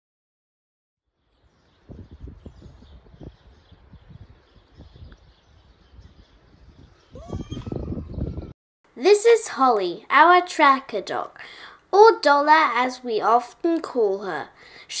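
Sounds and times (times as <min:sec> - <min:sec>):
faint birdsong: 0:01.1 - 0:08.5, 0:10.8 - 0:15.0
wind buffeting microphone: 0:01.4 - 0:08.6.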